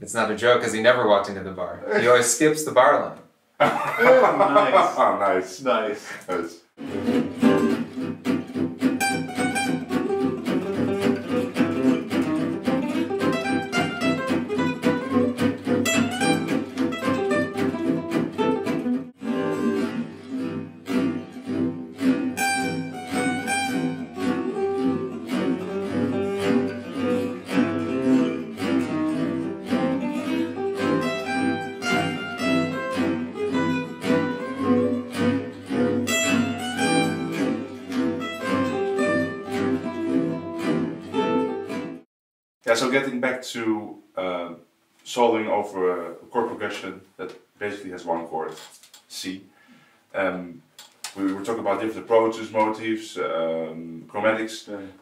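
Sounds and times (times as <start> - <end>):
rhythm guitar chords: 6.1 - 42.0
lead guitar solo: 6.8 - 42.0.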